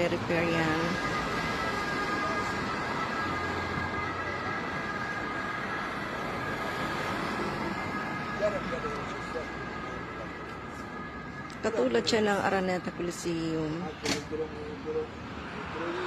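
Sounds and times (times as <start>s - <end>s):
roadside traffic noise: 0.0s - 16.0s
steady high-pitched whine: 0.0s - 16.0s.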